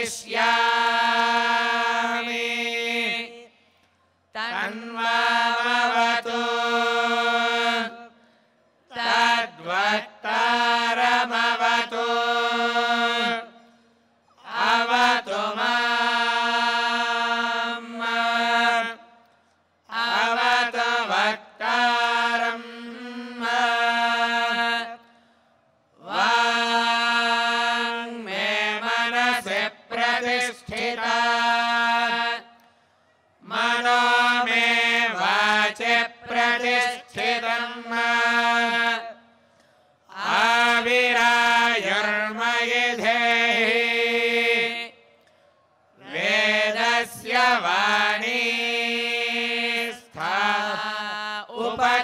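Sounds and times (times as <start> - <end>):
young man chanting: 26.0 - 32.5, 33.4 - 39.3, 46.0 - 52.0.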